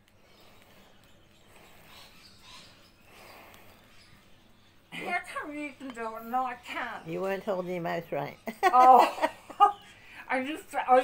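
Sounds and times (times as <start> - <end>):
breathy hiss: 0.1 - 4.2
puffs of breath: 0.1 - 4.4.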